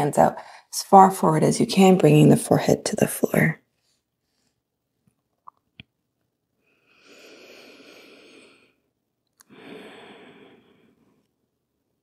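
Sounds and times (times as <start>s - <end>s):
person breathing deeply: 6.6s - 8.9s, 9.5s - 11.2s.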